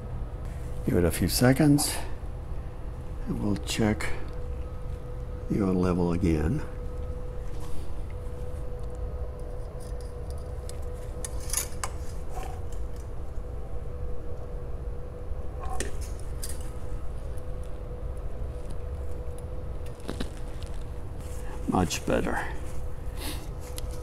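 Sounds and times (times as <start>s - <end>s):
steady low hum: 0.0s - 24.0s
faint steady tone: 1.1s - 11.6s.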